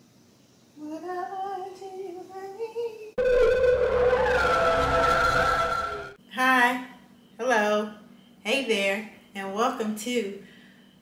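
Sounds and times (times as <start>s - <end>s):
steady high synth tone: 3.2s - 6.2s.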